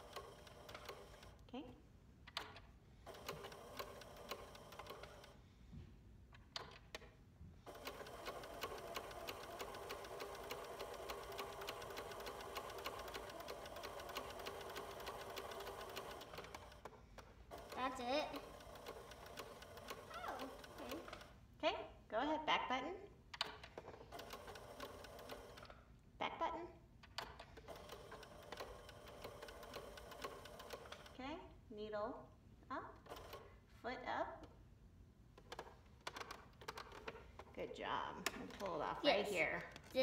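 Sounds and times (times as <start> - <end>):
sewing machine stitching: 0.0 - 1.4, 2.4 - 5.4, 7.6 - 21.4, 23.4 - 25.8, 27.2 - 31.2, 33.0 - 33.6, 35.4 - 37.5.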